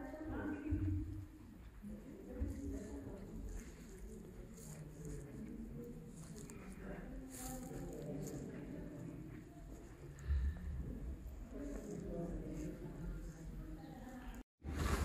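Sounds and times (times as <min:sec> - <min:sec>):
faint voices murmuring: 0:00.0 - 0:14.5.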